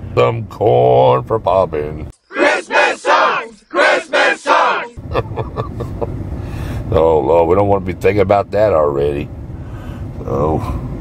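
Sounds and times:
cabin background noise: 2.3s - 5.0s
group of voices singing or shouting: 2.3s - 5.0s.

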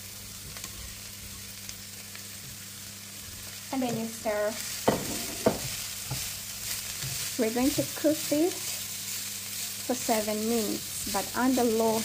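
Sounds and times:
vegetables sizzling in oil: 0.0s - 12.0s
vegetable pieces tapping into pan: 4.8s - 6.4s.

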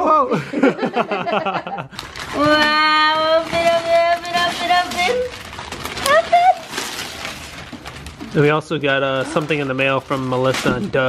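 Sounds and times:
wrapping paper crinkling and tearing: 1.9s - 11.0s.

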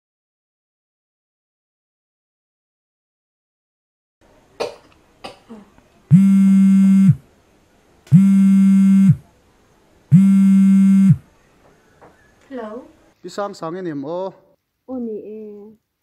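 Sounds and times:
mobile phone ringing: 6.1s - 7.2s, 8.1s - 9.2s, 10.1s - 11.2s.

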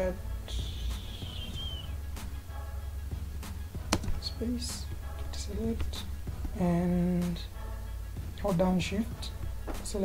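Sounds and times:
high whistling tone: 0.4s - 2.2s.

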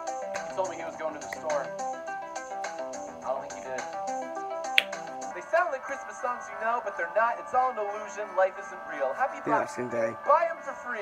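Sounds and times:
finger snap: 1.2s - 1.7s, 4.8s - 5.2s.

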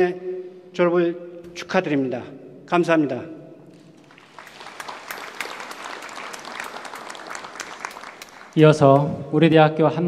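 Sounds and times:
audience clapping: 3.7s - 9.3s.

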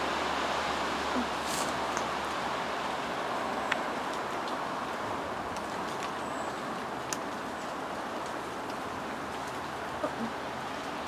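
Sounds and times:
outdoor background rush: 0.0s - 11.0s.

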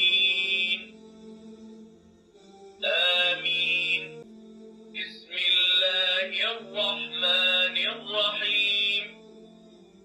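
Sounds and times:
chanted prayer recitation from speaker: 0.0s - 1.0s, 2.8s - 4.3s, 5.0s - 9.2s.

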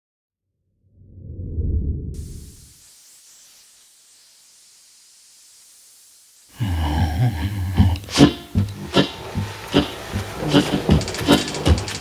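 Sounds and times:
low rumble: 0.8s - 2.6s
faint steady hiss: 2.2s - 12.0s.

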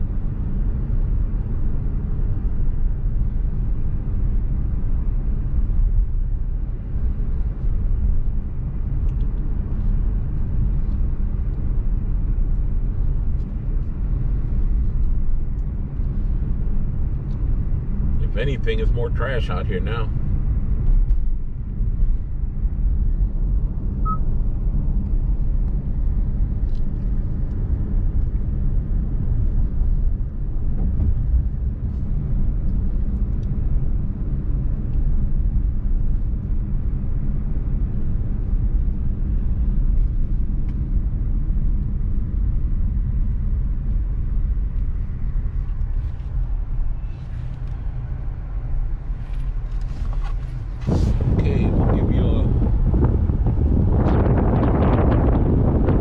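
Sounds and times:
car cabin road and engine rumble: 0.0s - 56.0s
wind noise: 20.2s - 56.0s.

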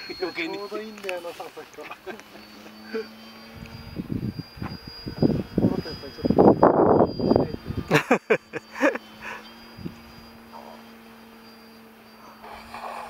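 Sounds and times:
people talking: 0.0s - 2.2s, 5.6s - 6.4s
small aircraft droning overhead: 0.0s - 13.0s.

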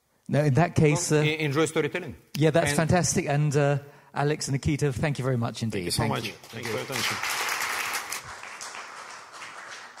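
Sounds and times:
audience applause: 6.4s - 10.0s.

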